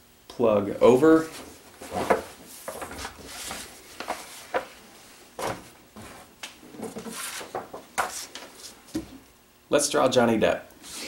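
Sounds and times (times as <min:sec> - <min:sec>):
newspaper pages rustling: 0:01.1 - 0:04.8, 0:05.4 - 0:08.9.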